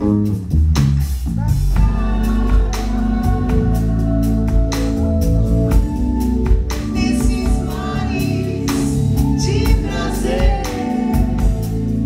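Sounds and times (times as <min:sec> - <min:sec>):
woman singing: 0:01.8 - 0:05.1, 0:05.7 - 0:12.0
organ chords: 0:01.8 - 0:12.0.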